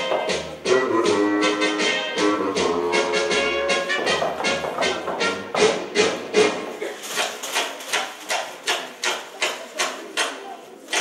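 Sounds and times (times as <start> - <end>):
backing music: 0.0 - 6.9.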